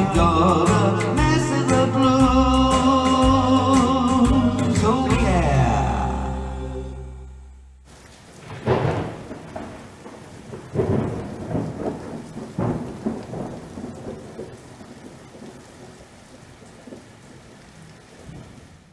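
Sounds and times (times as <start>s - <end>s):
steady rain: 7.8s - 18.9s
thunder rumbling: 7.9s - 17.4s.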